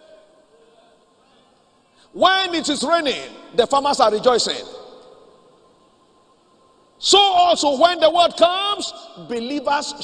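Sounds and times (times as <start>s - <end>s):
man's voice reverberating: 0.0s - 5.5s, 7.0s - 10.0s
low hiss: 0.0s - 10.0s
thin steady hum: 0.0s - 10.0s.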